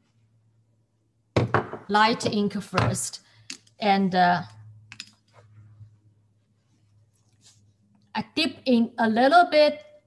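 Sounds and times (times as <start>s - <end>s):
brush rustling in ink dish: 6.4s - 7.9s.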